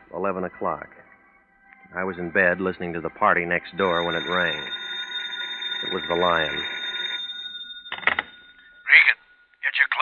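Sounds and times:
telephone bell ringing: 0:03.7 - 0:09.5.

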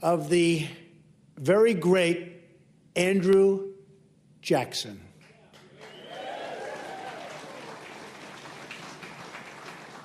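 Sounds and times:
audience applauding: 0:05.6 - 0:10.0.

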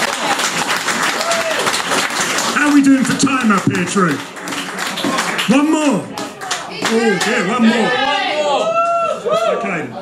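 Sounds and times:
audience clapping: 0:00.0 - 0:07.6.

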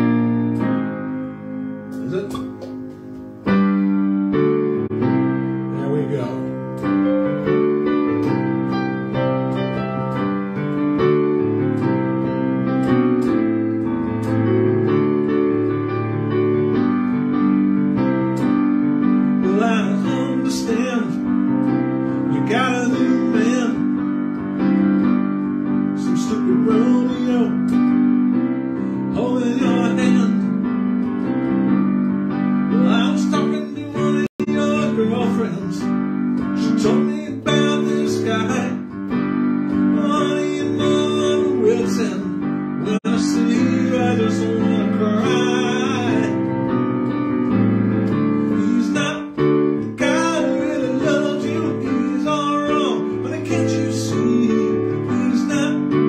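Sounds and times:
digital piano slow chords: 0:00.0 - 0:56.0.

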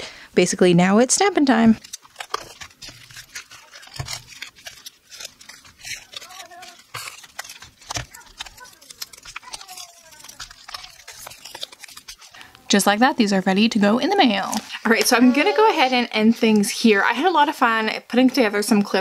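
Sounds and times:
paper and plastic crinkling: 0:01.4 - 0:17.5.

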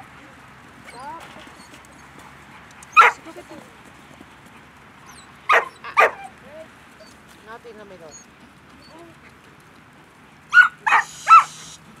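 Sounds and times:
dog barking loudly: 0:03.0 - 0:03.2, 0:05.5 - 0:06.3, 0:10.5 - 0:11.6.

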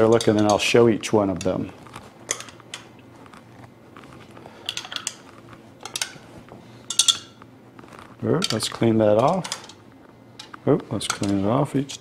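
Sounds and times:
stirrer clinking on plastic cups: 0:00.0 - 0:02.9, 0:04.5 - 0:06.3, 0:06.9 - 0:07.4, 0:08.3 - 0:09.8
faint steady hum: 0:00.0 - 0:12.0.

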